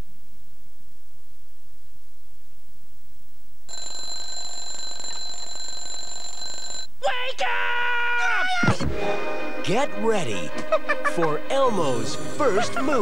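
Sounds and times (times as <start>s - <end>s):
electronic ringing tone: 3.7s - 6.9s.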